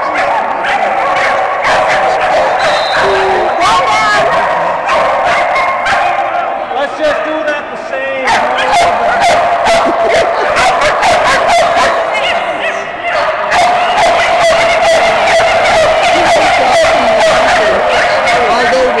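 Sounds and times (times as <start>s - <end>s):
dogs barking rapidly: 0.0s - 6.6s, 8.2s - 12.4s, 13.1s - 19.0s.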